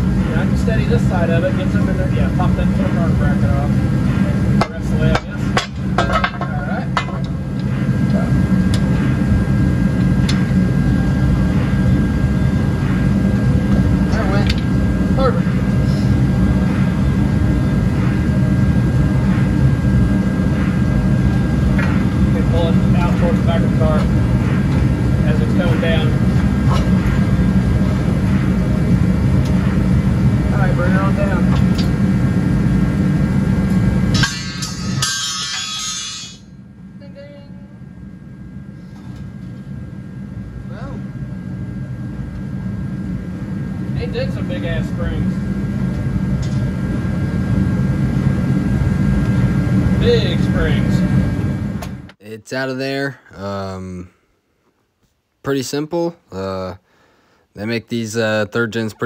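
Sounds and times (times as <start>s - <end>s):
low mechanical hum: 0.0s - 59.0s.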